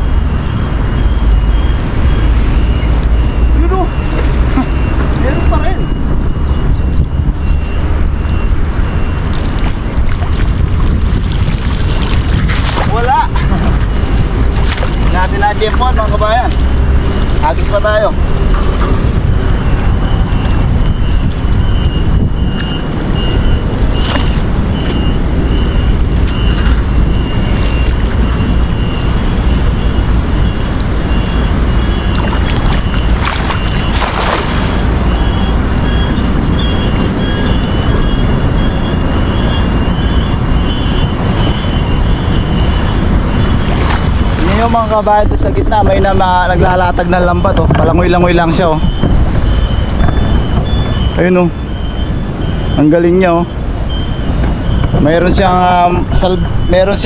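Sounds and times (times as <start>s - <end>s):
wind buffeting microphone: 0.0s - 57.0s
cast net splashing in water: 9.1s - 15.3s, 32.1s - 35.4s.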